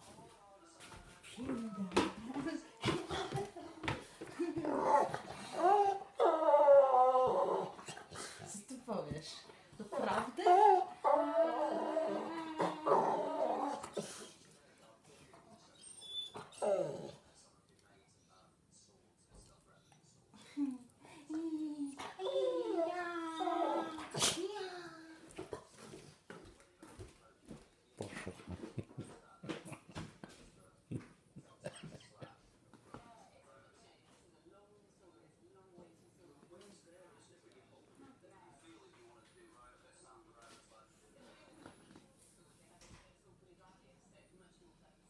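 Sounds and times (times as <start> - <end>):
dog whining: 4.6 - 7.9, 10.4 - 14.2, 15.8 - 17.2, 21.9 - 24.4.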